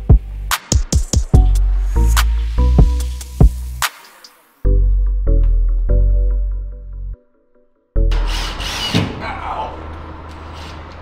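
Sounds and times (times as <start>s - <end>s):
background music: 0.0s - 8.6s.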